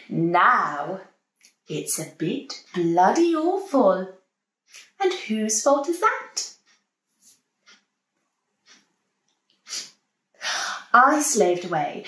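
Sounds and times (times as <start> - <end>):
woman speaking: 0.0 - 1.0, 1.7 - 4.1, 4.8 - 6.5, 10.4 - 12.0
woman breathing: 9.6 - 10.9.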